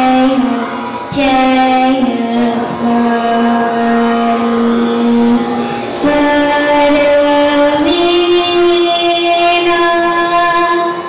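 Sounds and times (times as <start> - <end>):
girl singing a long note: 0.0 - 11.0.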